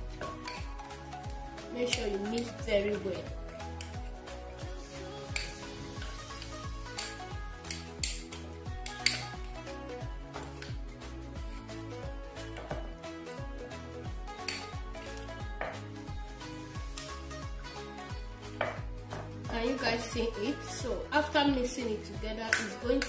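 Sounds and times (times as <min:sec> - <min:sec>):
background music: 0:00.0 - 0:23.0
spoon stirring paste in glass bowl: 0:03.5 - 0:09.4.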